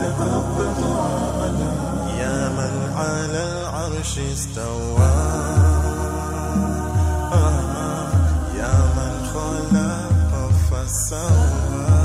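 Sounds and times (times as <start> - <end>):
steady low drone: 0.0 - 12.0
wordless sung melody: 0.0 - 12.0.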